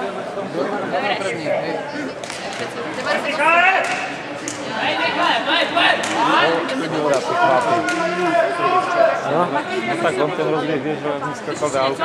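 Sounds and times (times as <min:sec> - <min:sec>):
echoing voices talking: 0:00.0 - 0:12.0.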